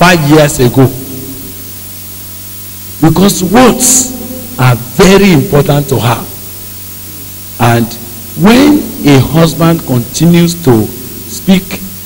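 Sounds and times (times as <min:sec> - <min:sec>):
low electrical hum: 0:00.0 - 0:12.0
steady hiss: 0:00.0 - 0:12.0.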